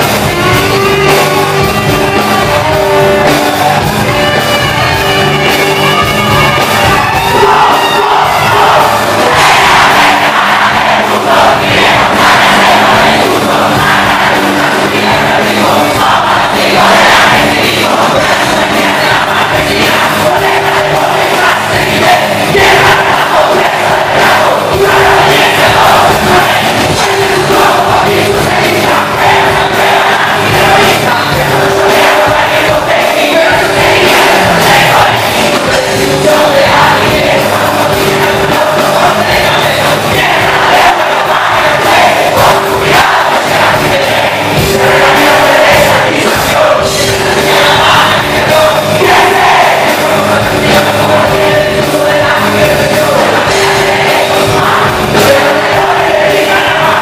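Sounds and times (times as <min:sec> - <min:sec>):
crowd shouting along: 0:00.0 - 0:57.0
rock band playing live: 0:00.0 - 0:57.0.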